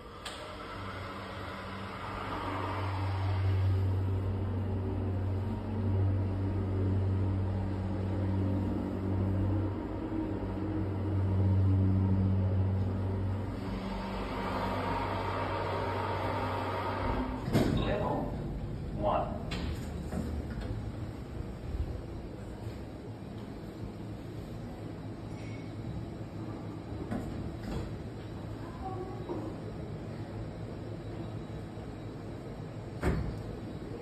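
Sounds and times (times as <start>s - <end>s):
elevator doors opening: 0.0s - 23.8s, 25.3s - 34.0s
elevator power unit humming: 0.0s - 34.0s.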